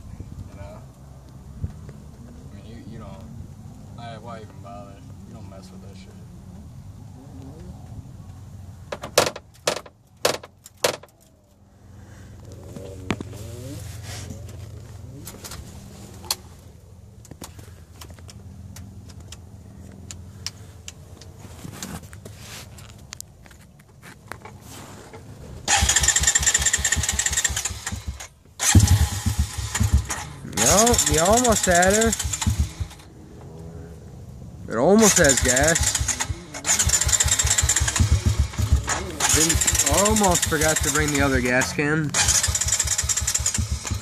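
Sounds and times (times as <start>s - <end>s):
sharp knocks: 8.9s - 11.1s
engine cranking and sputtering: 24.4s - 33.6s, 34.8s - 44.0s.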